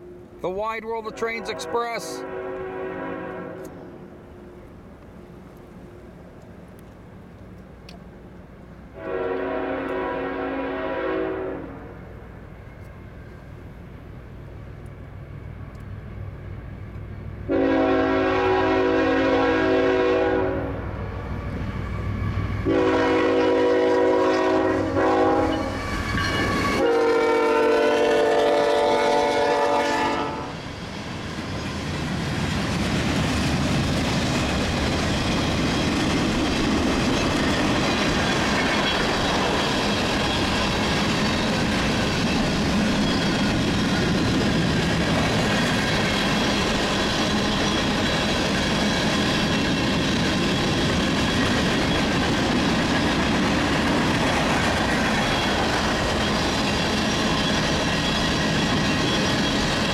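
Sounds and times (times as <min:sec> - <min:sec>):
train wheels rumbling on rail: 0:00.0 - 0:59.9
locomotive horn blasts: 0:01.0 - 0:03.8, 0:09.0 - 0:11.9, 0:17.5 - 0:20.8, 0:22.6 - 0:25.8, 0:26.4 - 0:30.6.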